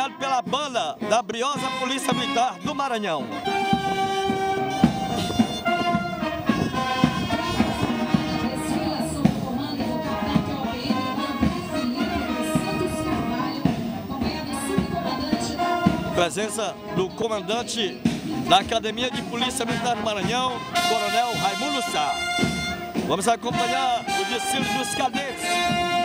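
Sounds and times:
marching band playing a march: 0:00.0 - 0:26.0
sharp drum beats: 0:00.3 - 0:26.0.

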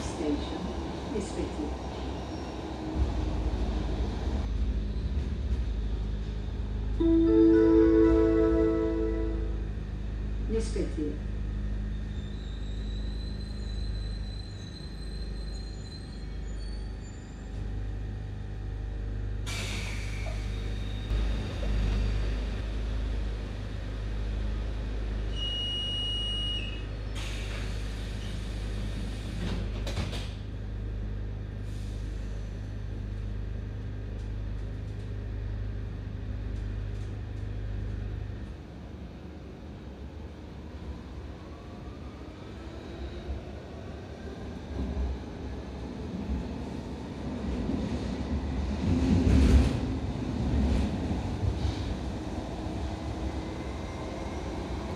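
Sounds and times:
train hum and rumble: 0:00.0 - 0:54.9
air hiss of train doors: 0:19.4 - 0:20.8, 0:27.1 - 0:30.4, 0:31.6 - 0:32.4.

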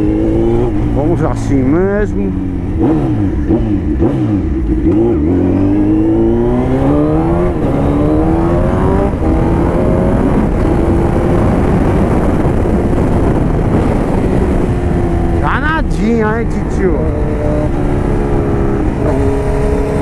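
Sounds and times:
motorcycle engine accelerating: 0:00.0 - 0:20.0
wind rush on microphone: 0:00.0 - 0:20.0.

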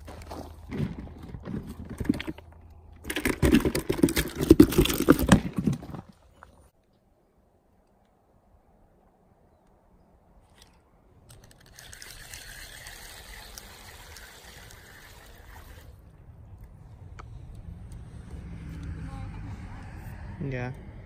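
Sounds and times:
sharp reel clicks: 0:11.3 - 0:16.0.

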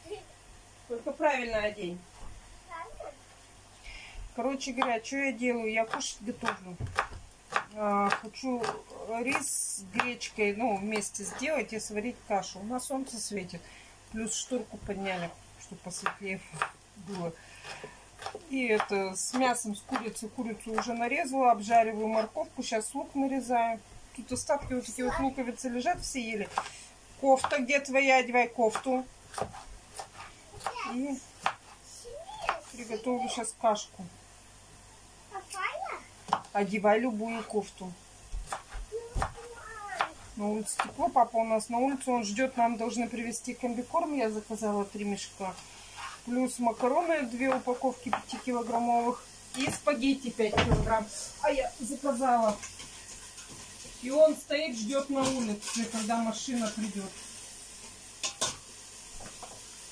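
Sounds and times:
carrots sizzling in a pan: 0:00.0 - 0:59.9
woman's voice: 0:00.9 - 0:02.1, 0:04.4 - 0:07.0, 0:07.7 - 0:17.4, 0:18.4 - 0:26.6, 0:27.2 - 0:29.1, 0:32.8 - 0:34.1, 0:36.5 - 0:38.0, 0:40.4 - 0:45.6, 0:46.3 - 0:52.6, 0:54.0 - 0:57.2.

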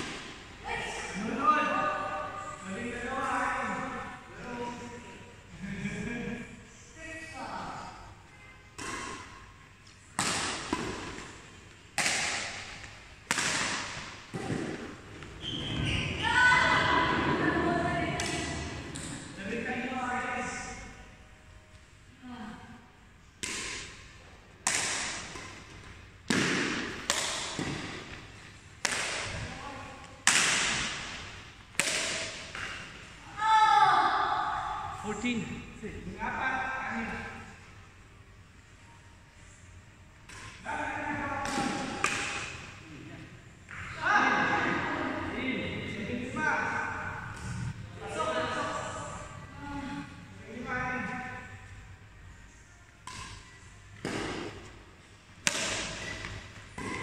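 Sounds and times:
badminton rackets hitting shuttlecock: 0:08.8 - 0:15.0, 0:18.1 - 0:19.3, 0:23.4 - 0:28.2, 0:28.8 - 0:29.5, 0:30.2 - 0:33.1, 0:41.4 - 0:42.7, 0:53.0 - 0:54.8, 0:55.4 - 0:57.0.

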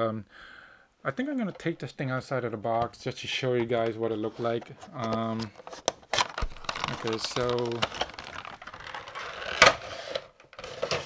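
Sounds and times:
cardboard box and plastic rustling: 0:03.6 - 0:11.0.

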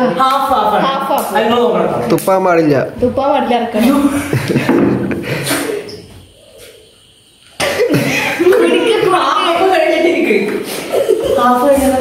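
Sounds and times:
voices: 0:00.0 - 0:12.0
laughter: 0:03.8 - 0:05.4, 0:07.6 - 0:09.1, 0:10.6 - 0:11.6
man coughing: 0:07.6 - 0:08.4.

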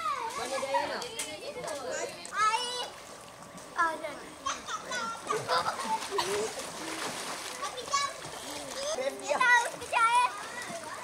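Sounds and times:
children splashing in a pool: 0:00.0 - 0:11.0.

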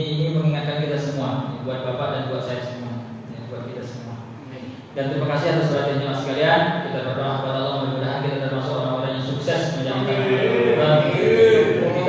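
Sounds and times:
man chanting: 0:09.9 - 0:12.0.

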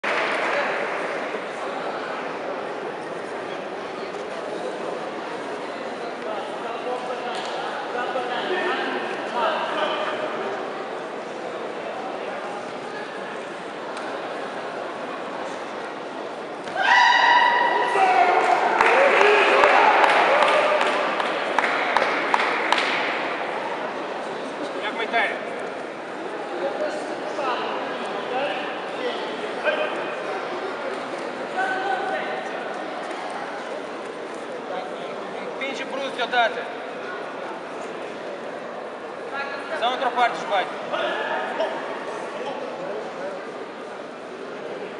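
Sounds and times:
chatter of many voices: 0:00.0 - 0:44.9.

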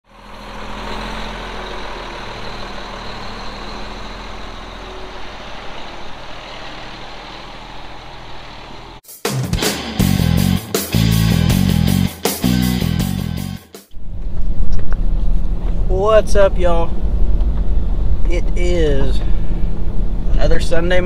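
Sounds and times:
heavy engine humming: 0:00.0 - 0:09.0, 0:13.9 - 0:20.9
loud guitar music: 0:09.1 - 0:13.8.

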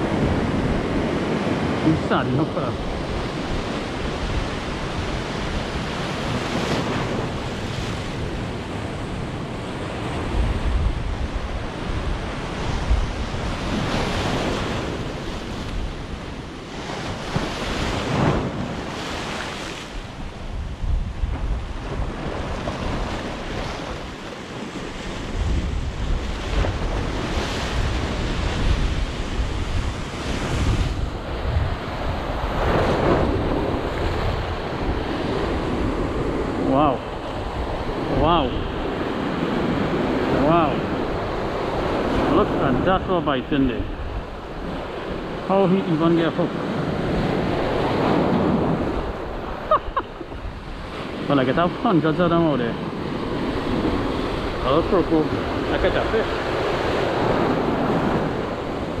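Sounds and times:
wind buffeting microphone: 0:00.0 - 0:51.8
surf breaking against seawall: 0:00.0 - 0:59.0.

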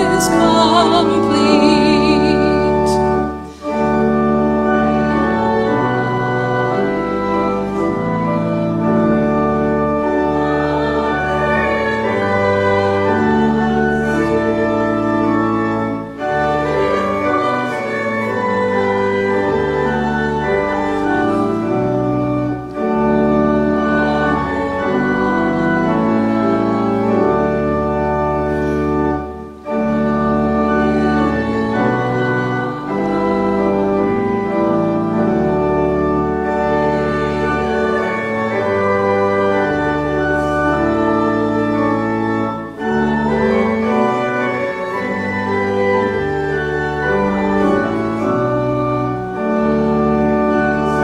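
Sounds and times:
church organ playing hymn chords: 0:00.0 - 0:51.0.

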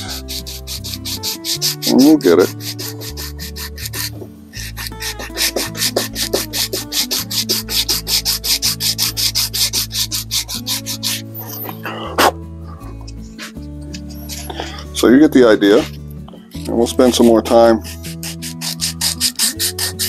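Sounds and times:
sandpaper rubbing on wood: 0:00.0 - 0:11.6, 0:16.6 - 0:20.0
background music with low notes: 0:00.0 - 0:20.0.

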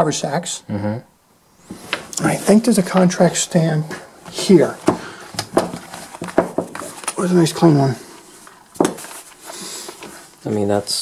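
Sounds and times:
cloth rustling: 0:01.6 - 0:10.8.

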